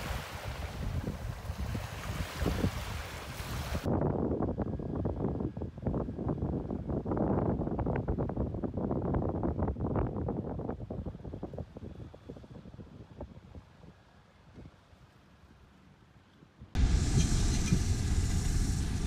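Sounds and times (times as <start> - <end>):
wind buffeting microphone: 0.0 - 14.8, 16.7 - 19.0.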